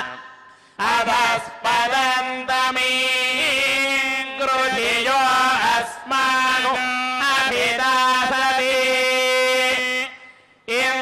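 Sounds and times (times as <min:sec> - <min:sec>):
person chanting in long notes: 0:00.0 - 0:11.0.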